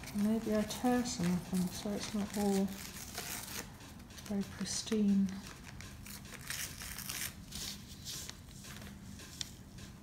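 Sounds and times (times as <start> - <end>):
paper tearing: 1.2 - 3.7, 6.0 - 7.8.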